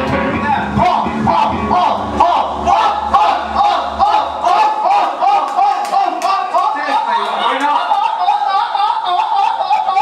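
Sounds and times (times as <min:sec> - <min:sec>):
bass and drums: 0:00.0 - 0:04.5
shouted vocal phrase: 0:00.4 - 0:08.0
crowd shouting along: 0:00.5 - 0:10.0.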